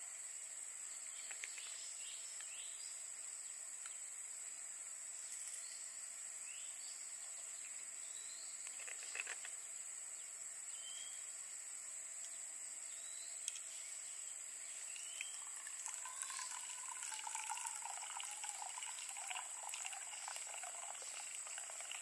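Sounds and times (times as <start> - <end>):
water pouring into metal mug: 14.9 - 22.0.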